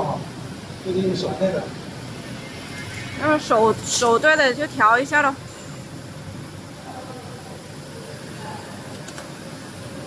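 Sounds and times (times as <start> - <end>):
factory hum and hiss: 0.0 - 10.0
faint distant voices: 6.5 - 10.0.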